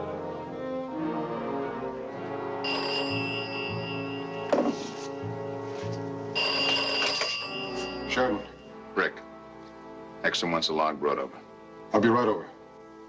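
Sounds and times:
film background music: 0.0s - 13.0s
desk telephone bell ringing: 2.6s - 5.4s, 6.4s - 8.7s.

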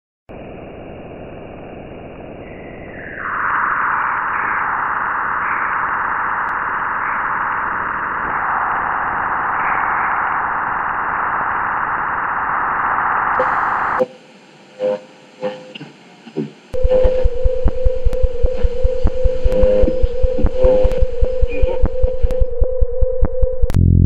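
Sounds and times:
steady static hiss: 0.3s - 22.3s.

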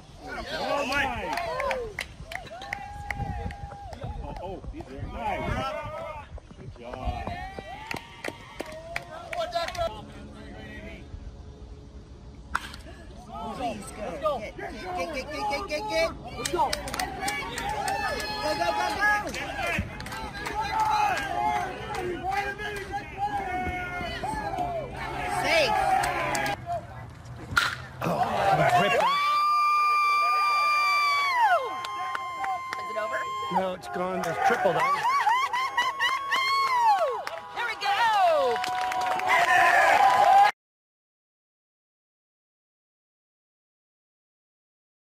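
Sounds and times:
baseball bat crack: 12.5s - 12.9s, 27.4s - 29.1s
crowd voices: 12.6s - 29.2s
baseball bat striking ball: 27.5s - 28.0s
spectator whooping: 28.0s - 40.5s.

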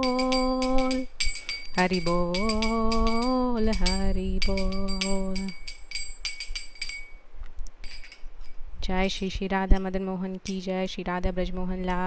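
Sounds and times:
hand cymbals clashing: 0.0s - 7.2s, 7.8s - 8.6s.

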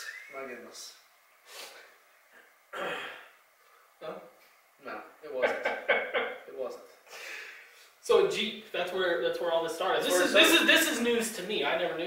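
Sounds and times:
man clearing his throat: 2.7s - 3.3s.

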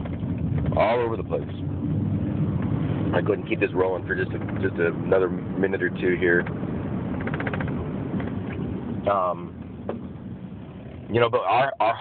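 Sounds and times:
car road and engine noise: 0.0s - 12.0s
rapid ticking: 7.2s - 8.3s.

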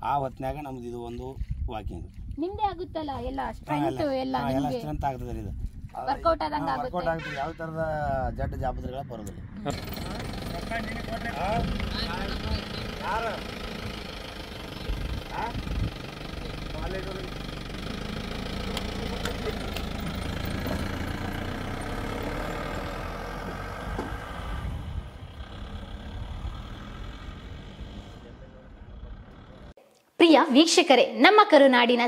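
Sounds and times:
vehicle engine idling: 9.6s - 24.2s, 24.9s - 29.8s.

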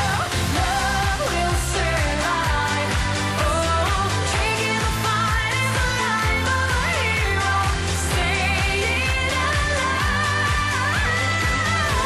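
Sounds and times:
dance beat: 0.0s - 12.0s
woman singing pop song: 0.0s - 12.0s.

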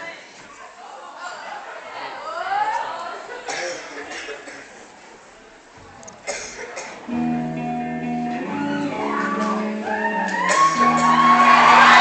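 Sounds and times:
person coughing: 3.5s - 4.7s, 6.2s - 7.0s.

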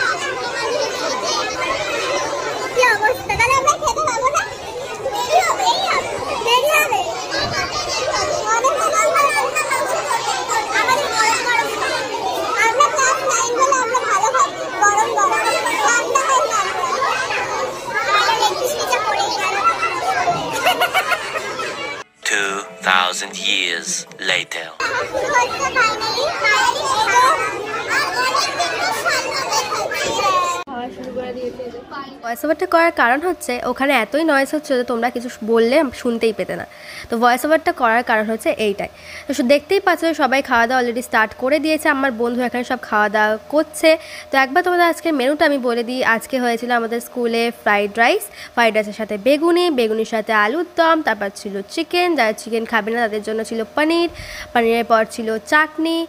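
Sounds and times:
chatter of girls' voices: 0.0s - 22.2s, 24.8s - 56.0s.

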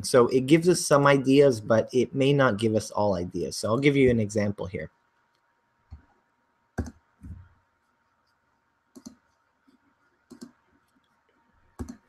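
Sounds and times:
computer mouse clicking: 8.9s - 9.4s, 10.2s - 12.0s.

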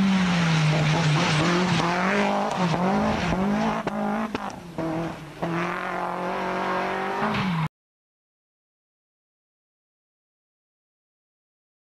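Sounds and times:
rally car engine running hard: 0.0s - 7.6s.

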